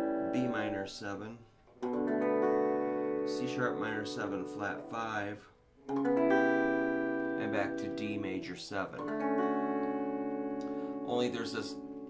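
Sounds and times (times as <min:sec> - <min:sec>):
electric guitar chord ringing: 0:00.0 - 0:01.1, 0:01.8 - 0:05.2, 0:05.8 - 0:12.0.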